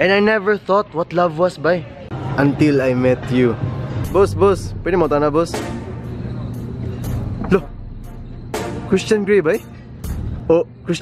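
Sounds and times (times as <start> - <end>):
low steady hum: 3.5 - 11.0.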